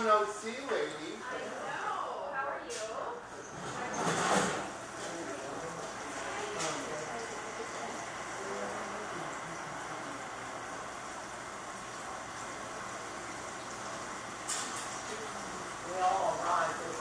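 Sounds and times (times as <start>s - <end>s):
room noise: 0.0s - 17.0s
faint voices talking: 1.1s - 11.0s.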